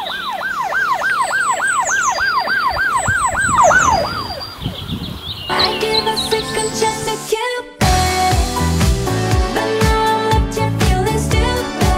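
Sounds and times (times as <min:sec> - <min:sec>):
police siren yelping: 0:00.0 - 0:05.0
music: 0:05.5 - 0:11.9.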